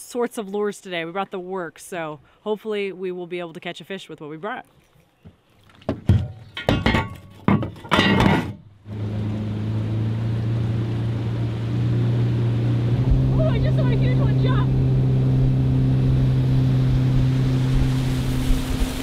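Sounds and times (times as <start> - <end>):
outboard motor running: 8.8 - 19.0.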